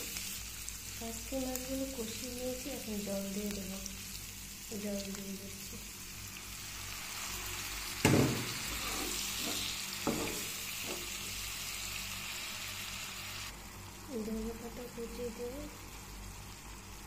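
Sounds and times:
water sizzling in hot pan: 0:00.0 - 0:17.0
sharp knock: 0:08.0 - 0:08.5.

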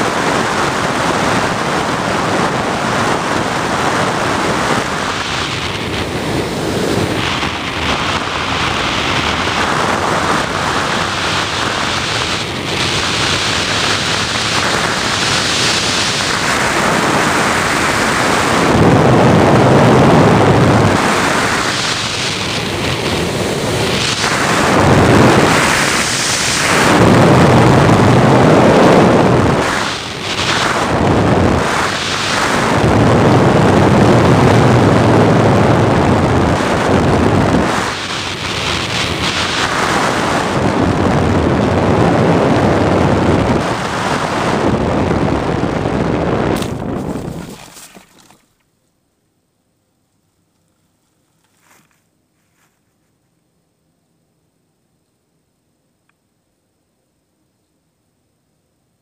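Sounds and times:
wind rushing over camera: 0:00.0 - 0:48.6.

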